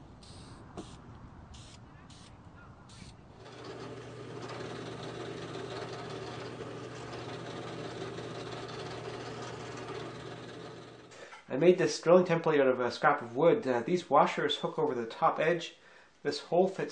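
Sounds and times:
aerosol can hissing: 0.2s - 1.0s
drill press motor drilling wood: 2.9s - 11.2s.

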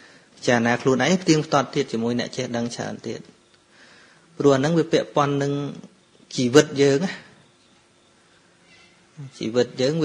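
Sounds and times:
faint background hiss: 0.0s - 10.0s
man's voice: 9.2s - 10.0s.

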